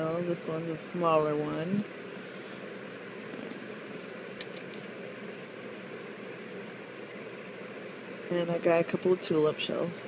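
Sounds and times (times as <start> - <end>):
room noise hiss: 0.0 - 10.0.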